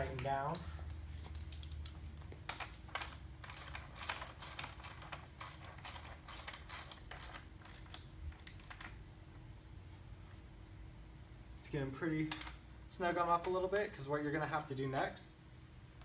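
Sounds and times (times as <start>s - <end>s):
ratchet wrench clicking: 3.4s - 8.7s.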